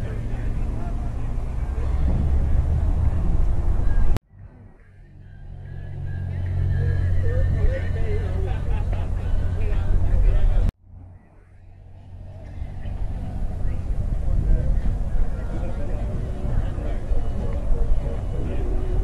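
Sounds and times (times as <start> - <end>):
faint distant voices: 0.0 - 19.0
low engine rumble: 0.0 - 19.0.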